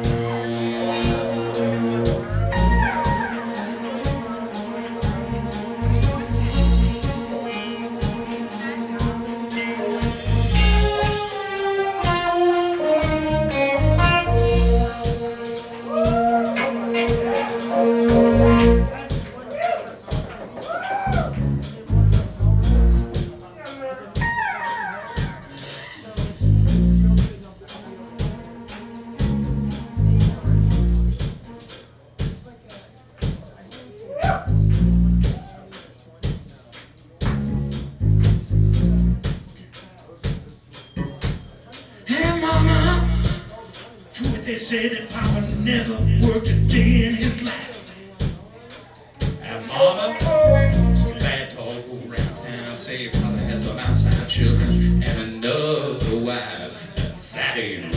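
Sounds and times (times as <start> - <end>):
sliding guitar notes: 0.0 - 19.0
bass riff: 0.0 - 19.2, 21.1 - 23.4, 24.2 - 27.4, 29.1 - 31.4, 34.2 - 35.5, 37.2 - 39.4, 42.3 - 43.5, 45.1 - 47.4, 50.2 - 51.4, 53.1 - 55.3
drum kit beat: 0.0 - 57.9
live soul band playing: 0.0 - 57.9.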